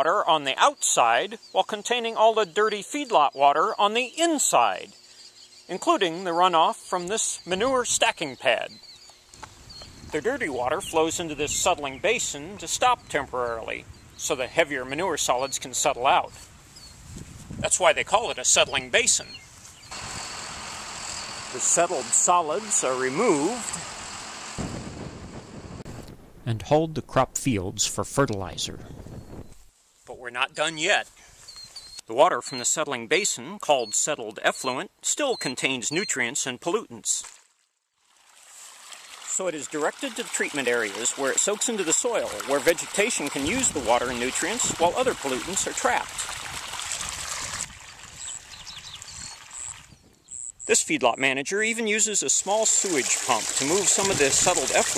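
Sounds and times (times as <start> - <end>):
wind buffeting microphone: 16.4 - 22.0, 23.9 - 26.6, 28.3 - 29.7, 43.4 - 50.2
tractor engine running: 19.9 - 25.9.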